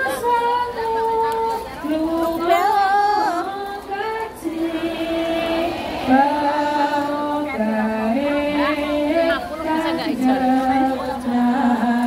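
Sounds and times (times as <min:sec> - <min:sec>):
woman singing long sliding notes: 0:02.2 - 0:09.3.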